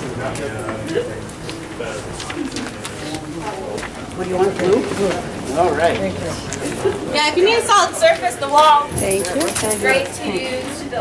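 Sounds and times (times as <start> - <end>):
steady low hum: 0.0 - 9.2
people talking quietly: 0.0 - 11.0.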